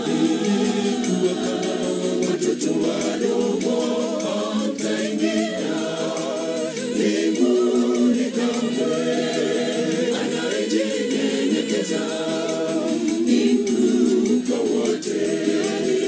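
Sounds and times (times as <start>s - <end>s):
choir singing a cappella: 0.0s - 16.0s.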